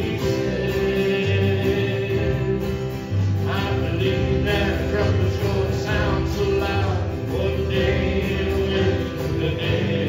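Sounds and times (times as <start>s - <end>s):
acoustic and electric guitars: 0.0s - 10.0s
low bass notes: 0.0s - 10.0s
men singing gospel song: 0.0s - 10.0s.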